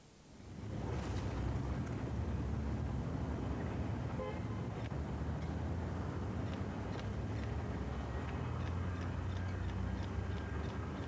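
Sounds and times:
traffic rumble: 0:00.2 - 0:11.0.

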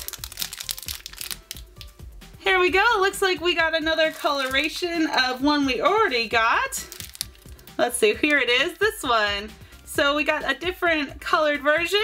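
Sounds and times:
plastic bag crinkling and tearing: 0:00.0 - 0:01.9, 0:03.9 - 0:04.9, 0:06.8 - 0:07.6
faint background music: 0:00.0 - 0:12.0.

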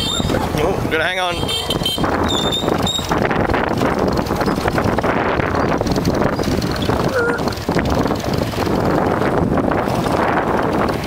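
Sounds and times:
small motorbike running: 0:00.0 - 0:11.0
wind buffeting microphone: 0:00.0 - 0:11.0
knocks and rattles: 0:02.1 - 0:11.0.

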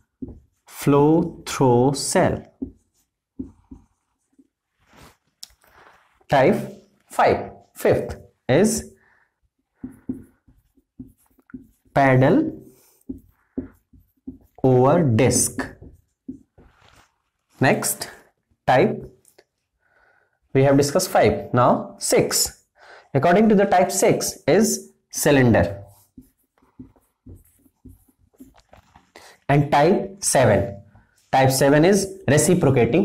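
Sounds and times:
marker writing on a whiteboard: 0:00.0 - 0:19.2, 0:22.0 - 0:33.0.

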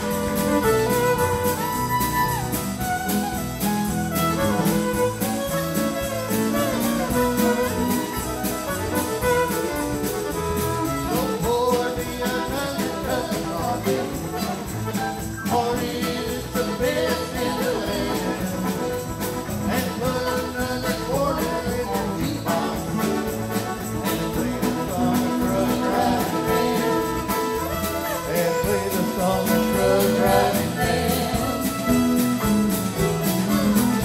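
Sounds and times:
country band playing: 0:00.0 - 0:34.0
drums steady beat: 0:00.0 - 0:34.0
electric guitar: 0:00.0 - 0:34.0
fiddle: 0:00.0 - 0:34.0.

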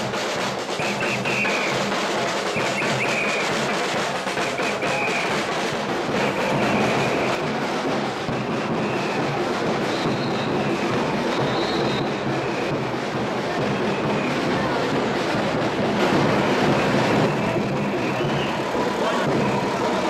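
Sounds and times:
crowd noise: 0:00.0 - 0:20.0.

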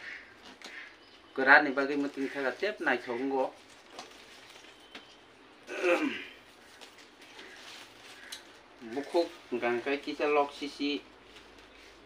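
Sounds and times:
man clearing his throat: 0:05.7 - 0:06.4.

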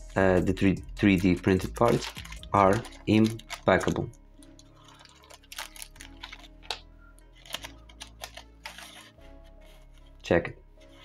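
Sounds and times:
plastic bag crinkling: 0:01.2 - 0:06.8, 0:07.4 - 0:09.2.

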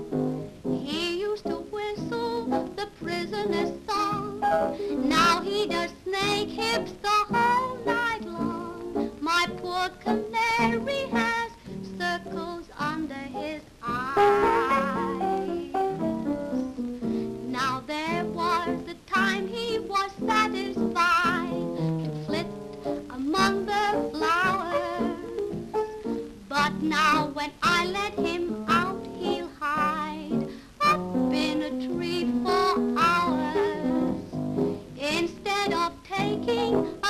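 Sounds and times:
piano accompaniment: 0:00.0 - 0:37.0
woman singing: 0:00.8 - 0:16.6, 0:17.4 - 0:37.0.

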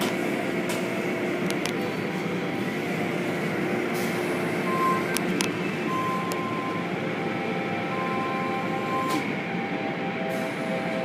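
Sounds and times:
car wash machinery: 0:00.0 - 0:11.0.

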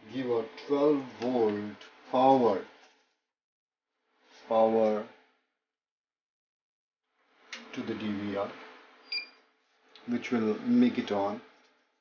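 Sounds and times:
man's voice: 0:00.0 - 0:02.6.

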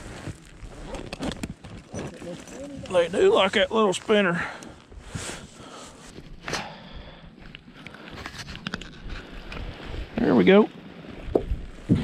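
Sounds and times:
clicks and rustles of handling fish: 0:00.2 - 0:03.2, 0:07.5 - 0:09.7
wind noise on microphone: 0:11.0 - 0:12.0.

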